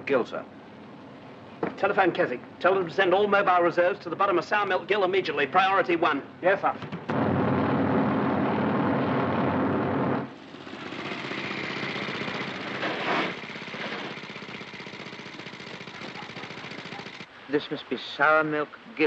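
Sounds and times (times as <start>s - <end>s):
helicopter rotor chopping: 6.6s - 17.3s
motorcycle engine running: 10.3s - 17.3s.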